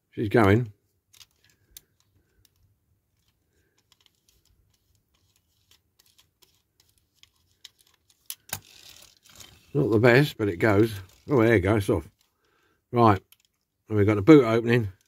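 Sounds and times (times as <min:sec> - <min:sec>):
toy car clicks: 0:03.8 - 0:09.7.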